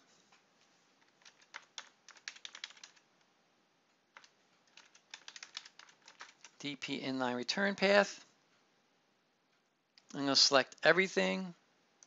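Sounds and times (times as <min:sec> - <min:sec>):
computer keyboard typing: 0:01.0 - 0:03.0, 0:04.1 - 0:06.6.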